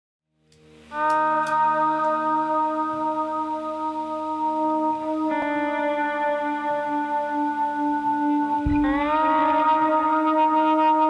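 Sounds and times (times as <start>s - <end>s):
acoustic and electric guitars: 0.9s - 11.0s.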